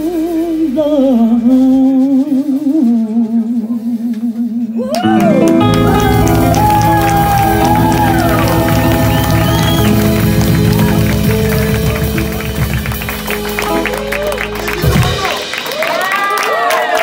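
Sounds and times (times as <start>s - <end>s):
bass: 0.0s - 16.1s
drums: 0.0s - 17.0s
audience applause and cheering: 4.8s - 17.0s
electric guitar bent notes: 5.0s - 15.8s.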